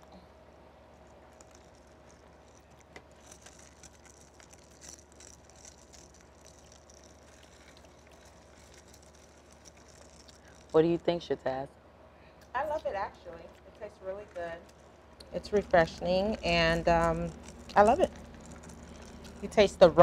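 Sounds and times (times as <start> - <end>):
low room hum: 0.0 - 20.0
sipping through paper straws: 1.1 - 11.0, 13.6 - 20.0
slurps and clicks: 1.1 - 11.0, 12.8 - 20.0.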